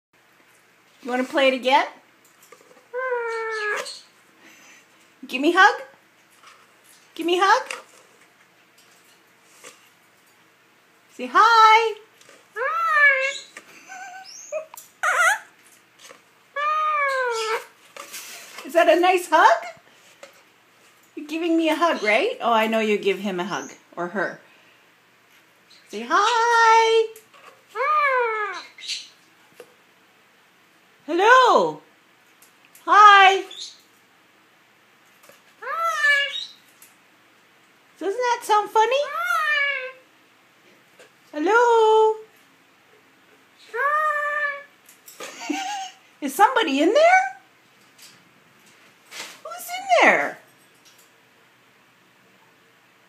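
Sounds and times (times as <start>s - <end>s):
parakeet chirping and squawking: 2.8s - 4.2s, 12.4s - 15.6s, 16.5s - 19.8s, 25.6s - 27.0s, 27.6s - 29.2s, 33.1s - 33.9s, 35.6s - 36.8s, 39.0s - 40.0s, 43.6s - 44.8s
parakeet call: 12.6s - 15.5s, 35.6s - 36.6s, 39.0s - 40.0s.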